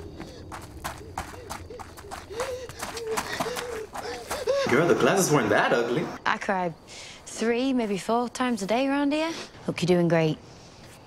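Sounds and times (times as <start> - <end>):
fast running footsteps: 0.0 - 5.3
woman gasping sobs: 1.4 - 4.7.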